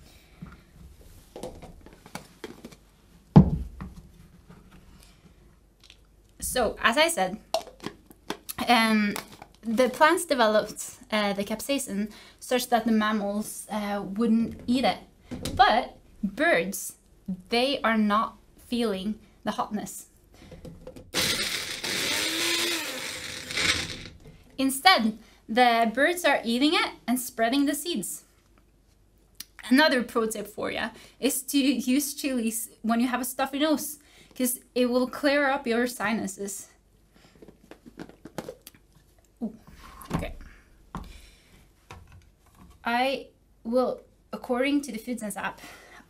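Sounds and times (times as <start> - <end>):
blender motor running: 21.2 - 24.2.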